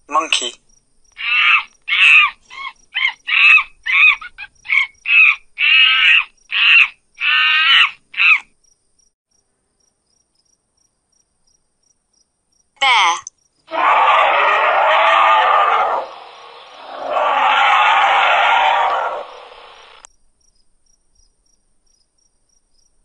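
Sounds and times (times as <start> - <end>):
monkey calling: 1.2 - 8.4, 13.7 - 20.1.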